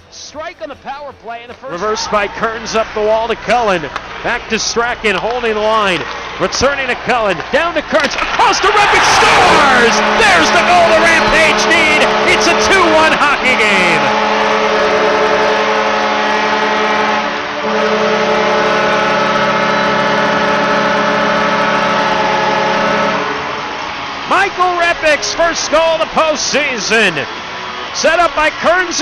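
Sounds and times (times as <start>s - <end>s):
crowd cheering: 1.5s - 29.0s
loud excited shouting: 8.3s - 14.1s
goal horn blasts: 8.4s - 25.8s.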